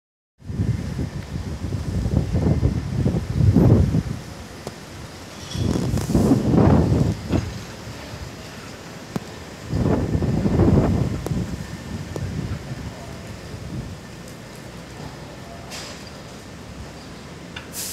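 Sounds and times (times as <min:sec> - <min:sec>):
gusty wind on microphone: 0:00.4 - 0:14.2.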